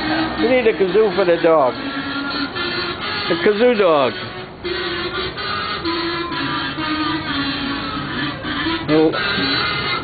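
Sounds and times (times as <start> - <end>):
music with held melody: 0.0 - 10.0.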